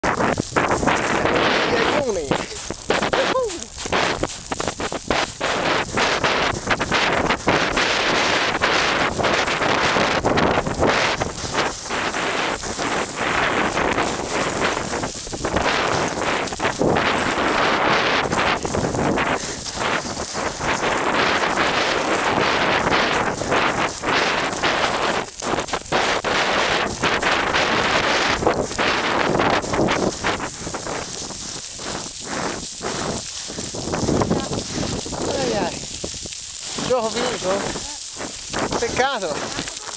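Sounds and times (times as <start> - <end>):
boots sliding on loose scree: 0.0 - 39.9.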